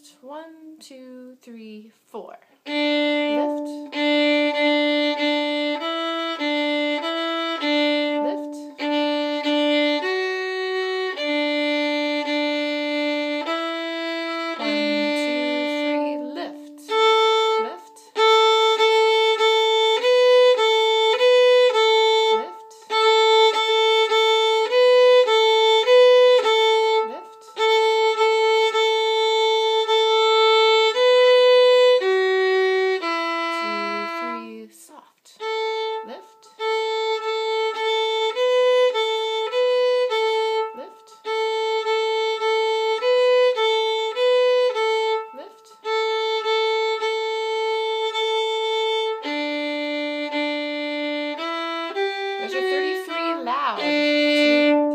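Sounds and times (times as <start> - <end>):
solo violin playing march: 2.6 - 34.7, 35.4 - 54.9.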